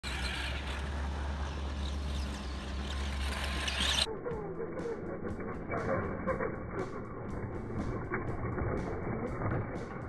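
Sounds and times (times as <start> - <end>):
toy car electric motor whine: 0.1 - 10.0
steady low rumble: 0.4 - 10.0.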